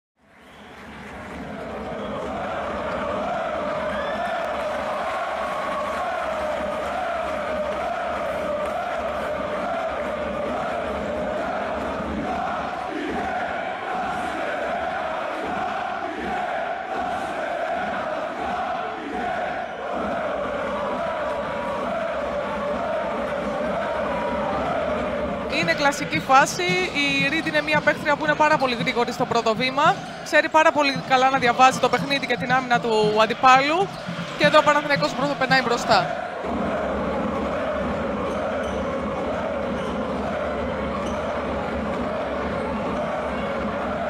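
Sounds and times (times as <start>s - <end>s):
crowd of fans chanting: 0.5s - 44.0s.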